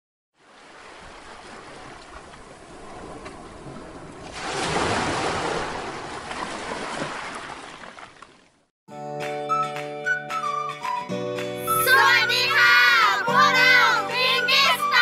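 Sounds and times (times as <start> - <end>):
ocean waves washing on shore: 0.4 - 8.1.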